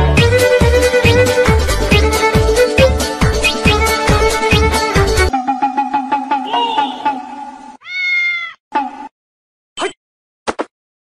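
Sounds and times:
cat meowing: 0:07.8 - 0:08.6.

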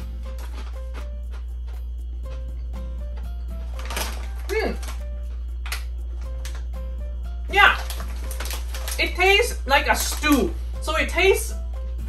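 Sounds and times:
snack being bitten and chewed: 0:00.0 - 0:06.7, 0:07.7 - 0:09.0
background music: 0:00.0 - 0:12.0.

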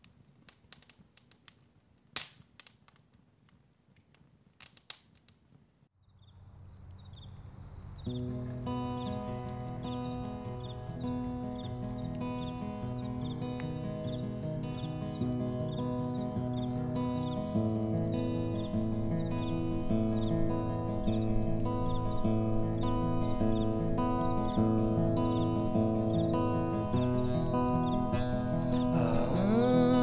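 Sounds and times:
acoustic guitar chords: 0:08.1 - 0:30.0.

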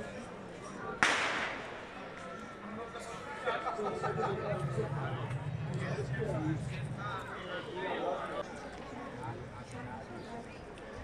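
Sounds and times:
low street noise: 0:00.0 - 0:11.0
firecracker bang: 0:01.0 - 0:01.9.

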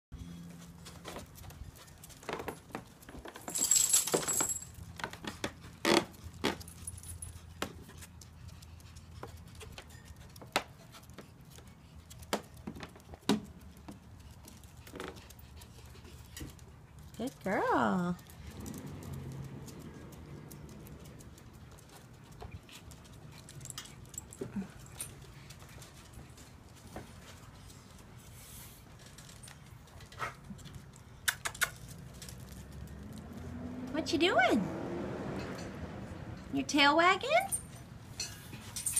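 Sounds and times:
metallic jingling and clinking: 0:03.2 - 0:05.0, 0:06.3 - 0:07.6, 0:37.3 - 0:38.9
dog claws clicking on wood: 0:30.6 - 0:33.0.

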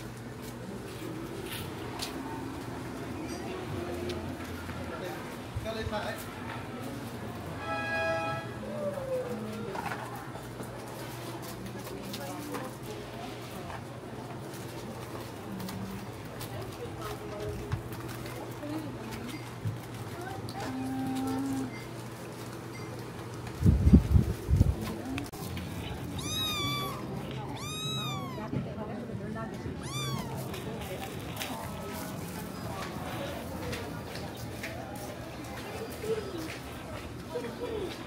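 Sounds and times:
kitten meowing: 0:26.0 - 0:28.6, 0:29.8 - 0:30.6.

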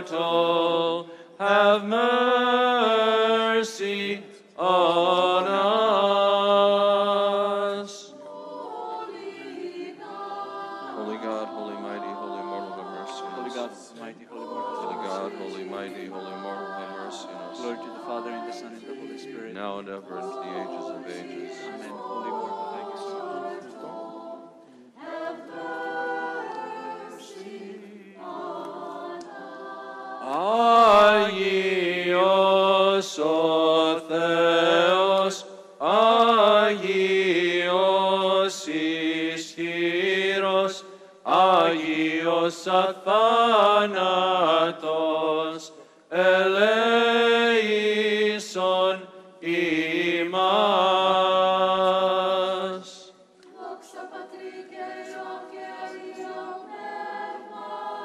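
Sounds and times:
unaccompanied voices chanting: 0:00.0 - 0:58.0.

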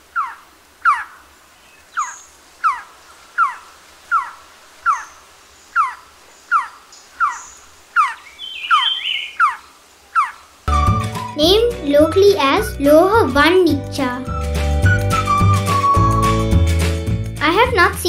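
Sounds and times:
bird calling short descending notes: 0:14.2 - 0:16.6.

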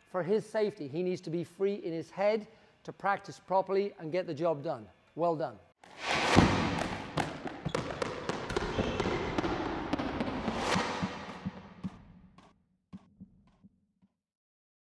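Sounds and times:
ball bounce hits: 0:06.3 - 0:12.2.

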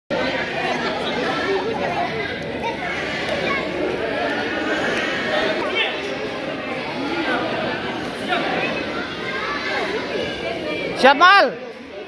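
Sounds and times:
children chattering: 0:00.1 - 0:12.0.

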